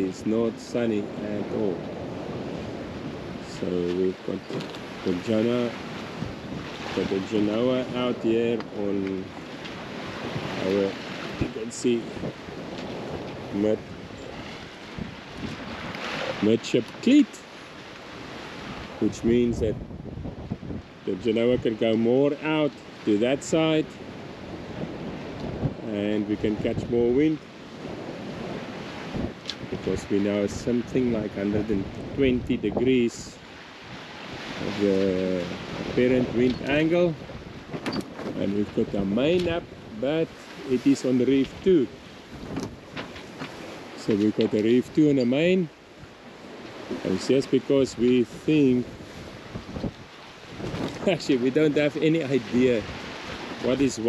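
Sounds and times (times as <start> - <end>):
sea water rushing along hull: 0.0 - 54.0
wind on microphone: 0.0 - 54.0.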